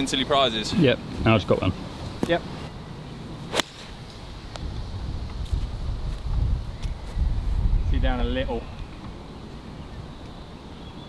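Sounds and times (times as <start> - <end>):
golf club striking ball: 3.5 - 3.9
wind rumble on microphone: 4.0 - 10.1.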